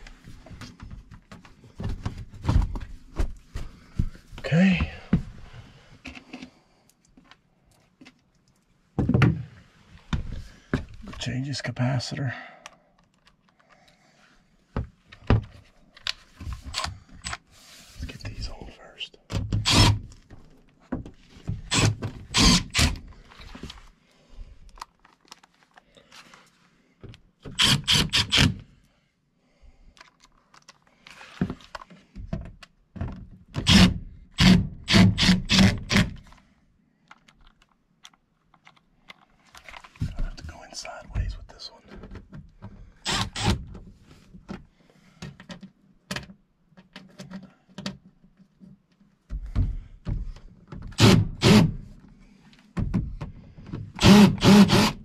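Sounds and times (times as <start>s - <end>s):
cordless drill driving screws: 19.6s - 20.0s, 21.7s - 23.0s, 27.5s - 28.6s, 33.6s - 36.2s, 43.0s - 43.6s, 51.0s - 51.8s, 54.0s - 55.0s.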